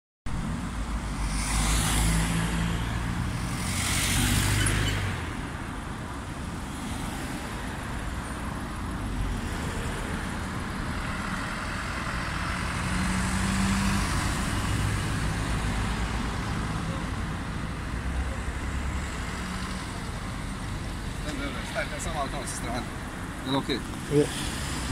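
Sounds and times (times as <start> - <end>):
rumble of engines and tyres: 0.3 - 24.9
vehicles passing close by: 0.3 - 24.9.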